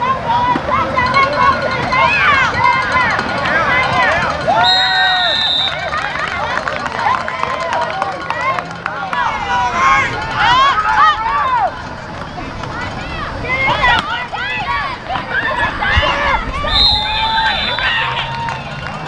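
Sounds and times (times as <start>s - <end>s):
crowd yelling and cheering: 0.0s - 19.0s.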